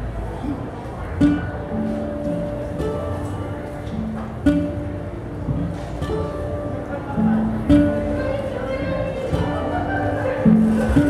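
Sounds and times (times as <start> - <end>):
guitar plucked notes: 0.0 - 11.0.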